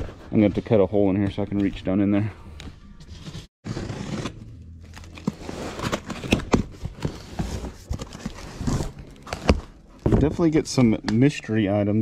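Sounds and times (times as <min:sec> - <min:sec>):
cardboard scraping and tearing: 0:03.1 - 0:09.7.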